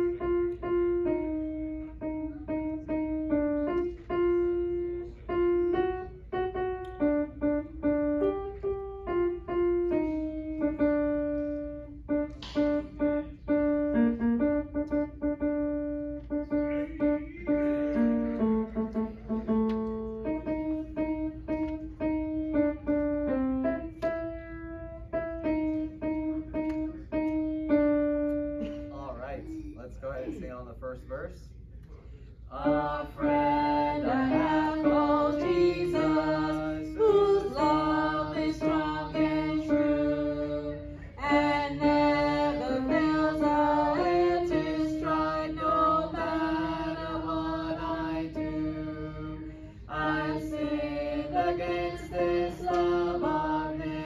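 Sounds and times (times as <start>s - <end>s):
piano playing held notes: 0.0s - 29.7s, 32.6s - 54.0s.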